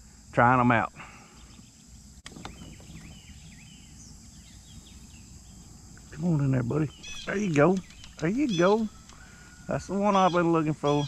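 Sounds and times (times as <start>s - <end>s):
insects droning: 0.0s - 11.0s
sharp click: 7.1s - 9.2s.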